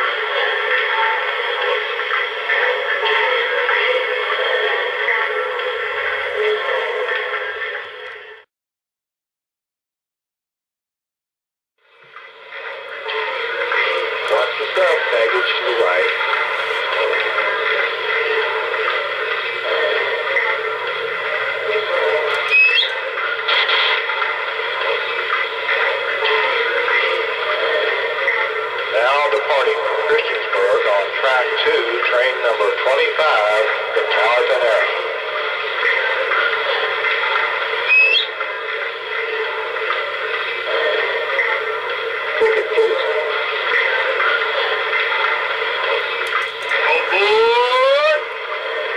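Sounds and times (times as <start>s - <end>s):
radio voice chatter: 13.8s - 17.3s, 28.9s - 35.1s, 42.4s - 43.3s, 46.8s - 48.3s.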